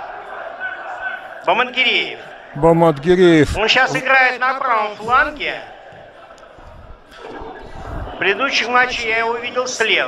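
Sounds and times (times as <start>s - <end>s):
stadium ambience: 0.0s - 10.0s.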